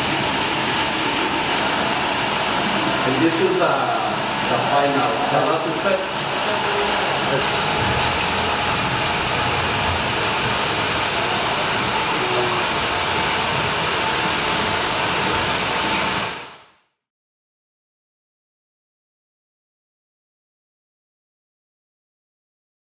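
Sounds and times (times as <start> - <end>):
steady rushing noise: 0.0 - 16.6.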